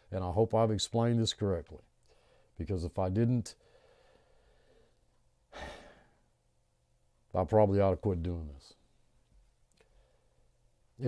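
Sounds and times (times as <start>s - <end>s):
man breathing: 2.0s - 2.6s, 3.6s - 6.3s, 9.8s - 10.6s.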